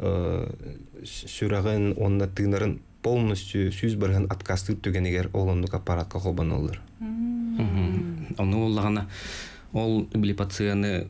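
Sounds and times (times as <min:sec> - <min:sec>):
man talking: 0:00.0 - 0:06.9, 0:07.6 - 0:11.0
man humming hesitantly: 0:07.0 - 0:08.4.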